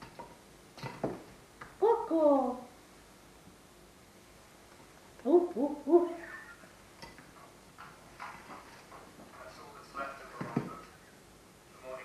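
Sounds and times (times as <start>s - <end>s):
person making hooting calls: 1.8s - 2.7s, 5.2s - 6.6s.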